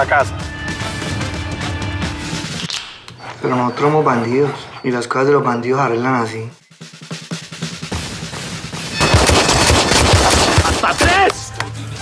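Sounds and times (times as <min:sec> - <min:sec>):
fast drum beat: 0:06.8 - 0:11.3
rapid pistol gunfire: 0:09.0 - 0:11.2.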